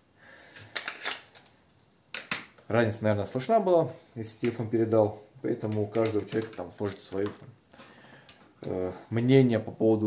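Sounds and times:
harmonica handling clicks and rattles: 0:00.6 - 0:02.6, 0:05.6 - 0:07.4.

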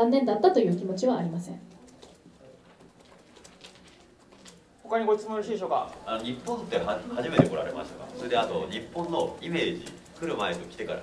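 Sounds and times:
faint clicks: 0:01.7 - 0:04.9
person speaking: 0:04.8 - 0:11.0.

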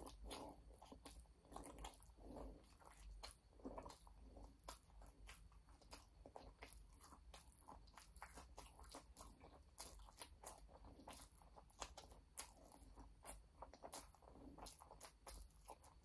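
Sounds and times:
chewing and crunching food: 0:00.0 - 0:16.0.

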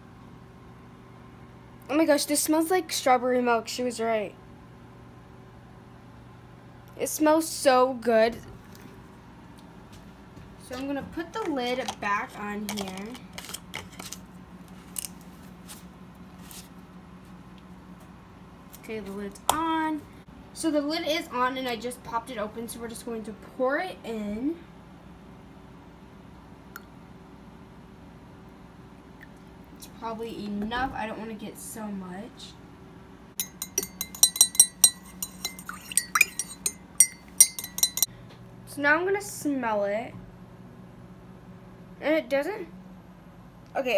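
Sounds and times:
spoon clinking in ceramic mug: 0:33.4 - 0:38.1.

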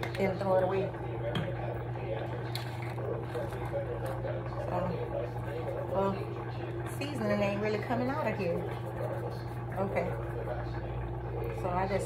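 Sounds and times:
appliance motor hum: 0:00.0 - 0:12.0.

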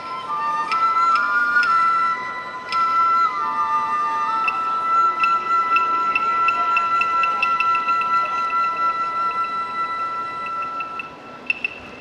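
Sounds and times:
quick light ticking: 0:10.9 - 0:12.0.

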